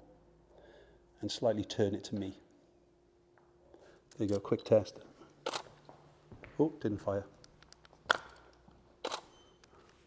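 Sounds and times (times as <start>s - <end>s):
camera shutter click: 5.4s - 5.7s, 9.0s - 9.4s.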